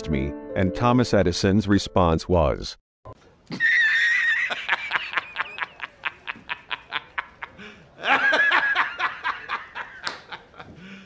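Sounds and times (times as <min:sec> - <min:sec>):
man laughing heartily: 0:03.5 - 0:11.0.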